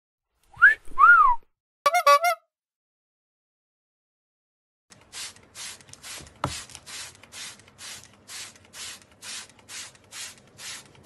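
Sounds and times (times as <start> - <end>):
whistled notes: 0.5 - 1.5.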